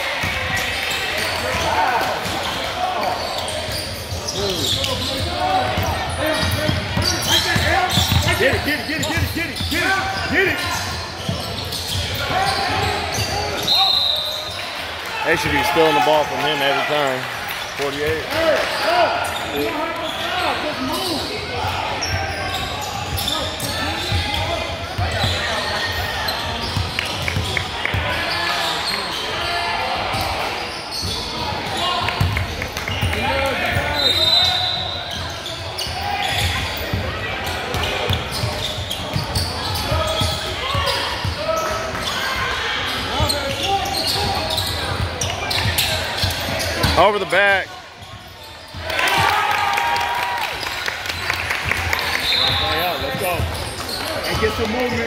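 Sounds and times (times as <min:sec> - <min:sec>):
crowd chatter in large hall: 0:00.0 - 0:55.0.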